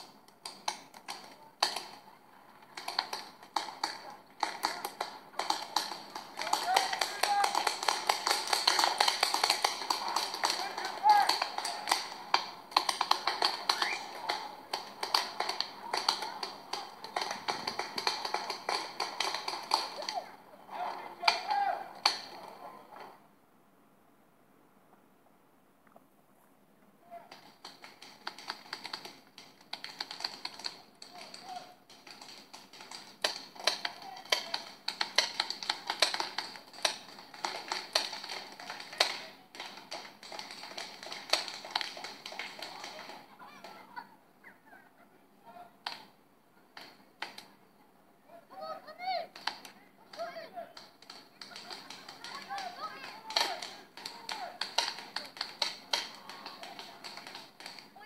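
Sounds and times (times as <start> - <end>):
paintball markers popping: 0.0 - 2.0, 2.7 - 20.3, 27.3 - 43.8, 49.4 - 58.0
people shouting: 2.8 - 22.9, 48.6 - 58.0.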